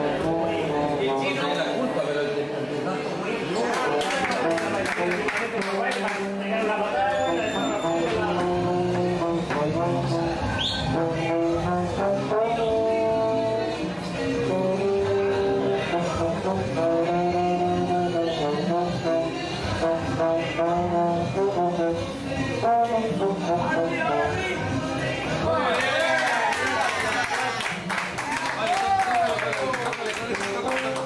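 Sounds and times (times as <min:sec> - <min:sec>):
trombone playing a melody: 0:00.0 - 0:01.4, 0:07.8 - 0:24.5.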